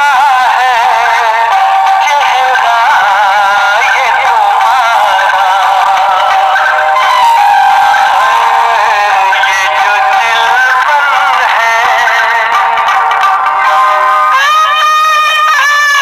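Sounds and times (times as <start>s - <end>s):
man singing: 0.0s - 16.0s.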